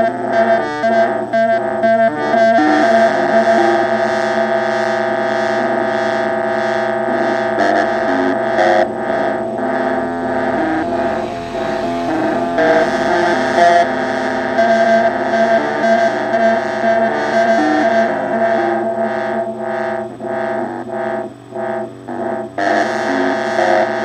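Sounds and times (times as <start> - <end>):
synthesizer drone: 2.3 - 21.0
rhythmic filter pulse: 2.4 - 20.6
synth note sequence: 7.2 - 19.6.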